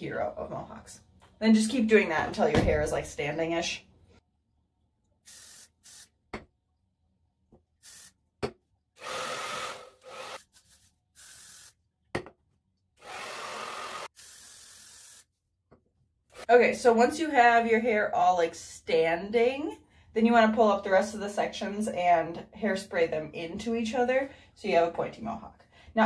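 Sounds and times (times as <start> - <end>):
aerosol can hissing bursts: 5.2 - 6.1, 7.8 - 8.2, 9.0 - 11.8, 14.1 - 15.3
hair dryer running: 9.0 - 10.4, 13.0 - 14.1.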